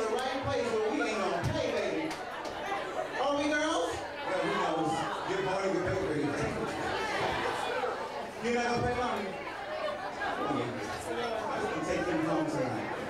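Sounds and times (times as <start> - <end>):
overlapping chatter: 0.0 - 13.0.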